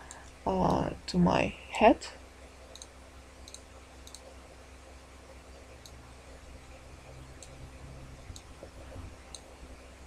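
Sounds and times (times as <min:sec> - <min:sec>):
low electrical hum: 0:00.0 - 0:10.0
faint computer mouse clicks: 0:02.7 - 0:02.9, 0:03.5 - 0:04.3.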